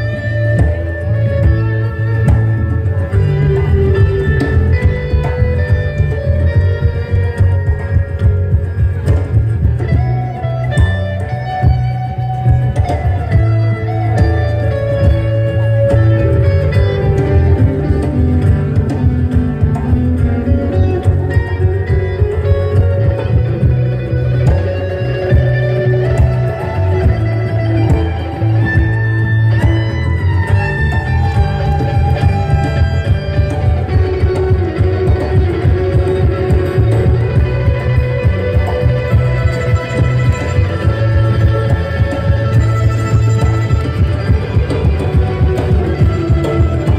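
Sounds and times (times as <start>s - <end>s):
live band playing: 0.0s - 46.9s
strong bass line: 0.0s - 46.9s.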